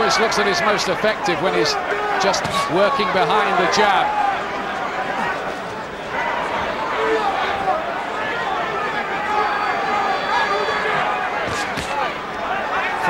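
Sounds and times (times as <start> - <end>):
crowd shouting and chattering: 0.0 - 13.0.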